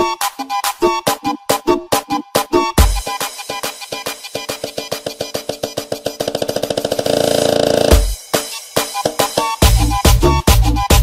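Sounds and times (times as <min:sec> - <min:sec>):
tribal dance music build-up: 0:01.9 - 0:11.0.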